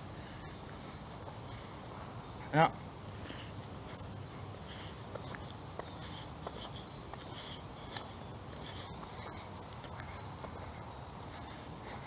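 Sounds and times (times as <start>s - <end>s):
footsteps on asphalt: 0.0s - 12.0s.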